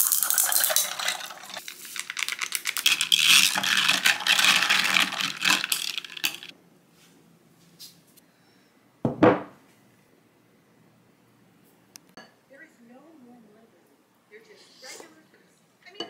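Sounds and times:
ice cubes clinking in glass: 0.0 - 6.5.

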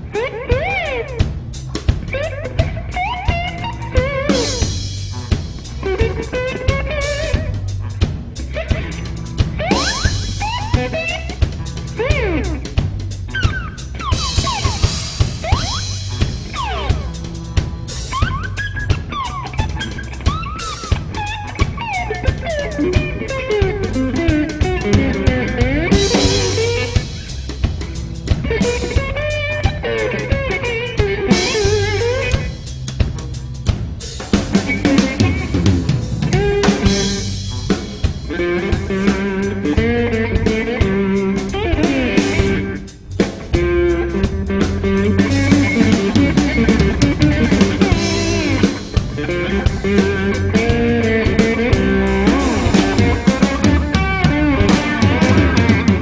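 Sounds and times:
drum kit: 0.0 - 56.0
electric bass: 0.0 - 56.0
electric guitar soloing: 0.0 - 56.0.

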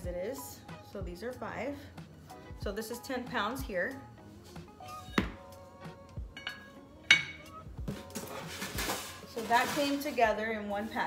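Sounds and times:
metal ringing: 6.4 - 7.6.

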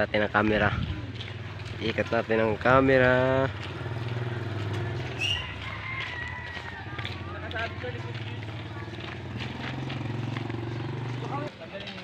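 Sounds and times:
small engine running: 7.0 - 11.5.

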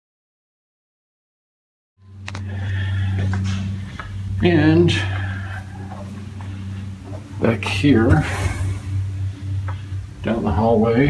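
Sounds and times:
steady low hum: 2.0 - 11.0.

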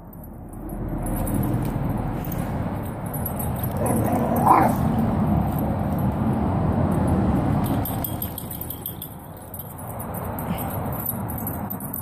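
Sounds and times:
dogs play-fighting: 3.4 - 5.6
dog barking: 3.8 - 4.8.

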